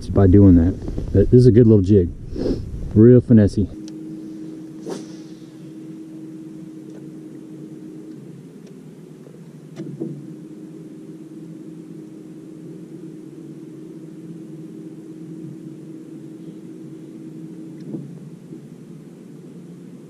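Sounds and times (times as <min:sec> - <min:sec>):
electric trolling motor humming: 0:02.7 - 0:20.0.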